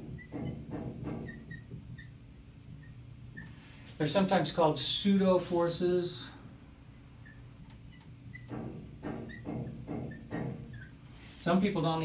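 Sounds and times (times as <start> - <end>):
marker squeaks: 0.0 - 3.6, 7.2 - 11.0
marker writing on whiteboard: 7.2 - 11.0.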